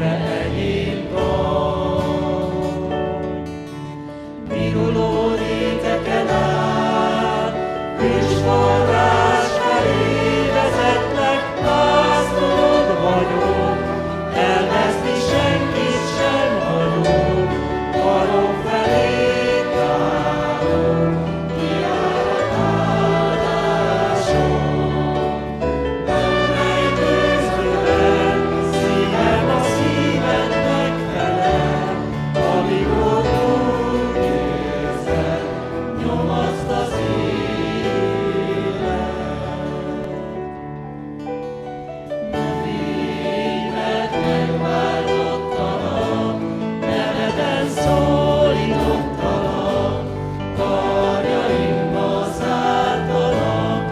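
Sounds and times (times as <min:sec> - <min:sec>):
mixed choir singing worship song: 0:00.0 - 0:40.9, 0:42.1 - 0:53.9
acoustic guitar: 0:00.0 - 0:53.9
trumpet: 0:08.0 - 0:31.8.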